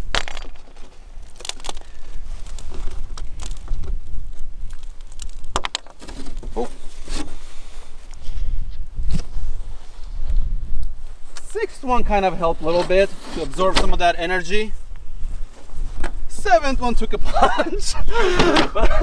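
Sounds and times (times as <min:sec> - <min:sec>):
boards knocking and scraping: 0:05.5 - 0:07.4
wind on microphone: 0:06.4 - 0:11.4.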